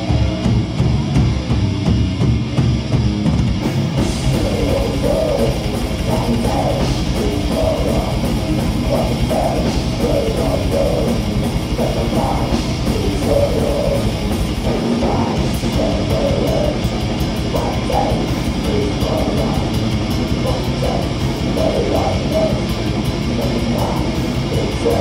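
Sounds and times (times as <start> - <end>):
distorted electric guitars: 0.0 - 25.0
fast drum kit: 0.0 - 25.0.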